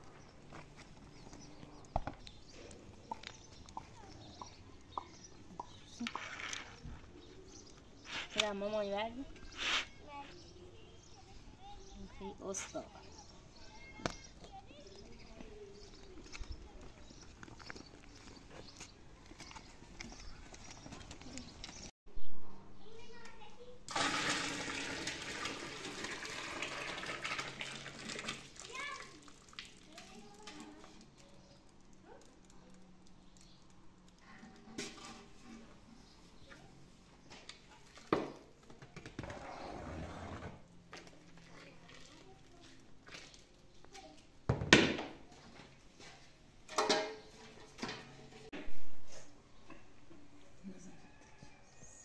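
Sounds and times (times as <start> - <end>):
milk pouring and splashing: 23.9 - 31.3
metal pots scraping and knocking: 34.7 - 35.9, 46.7 - 48.5.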